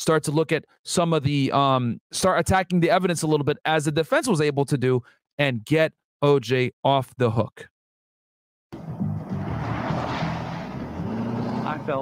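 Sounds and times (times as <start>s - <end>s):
music: 8.8s - 10.5s
car engine driving past: 8.8s - 12.0s
road noise: 8.8s - 12.0s.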